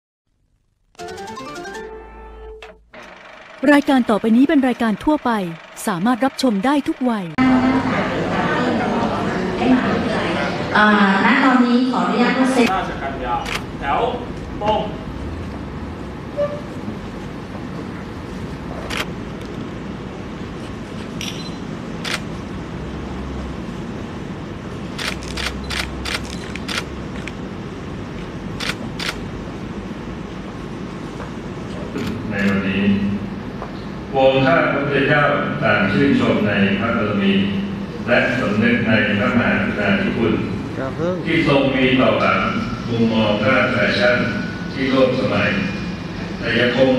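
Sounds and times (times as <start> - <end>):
electronic jingle: 1.0 - 7.4
hall background noise: 1.0 - 46.9
announcer speaking: 3.6 - 7.9
camera shutters clicking: 25.0 - 27.4.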